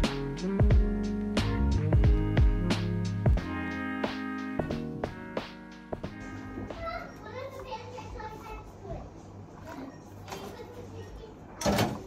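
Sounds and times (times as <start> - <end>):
background music: 0.0 - 7.6
children chattering and playing: 6.3 - 12.0.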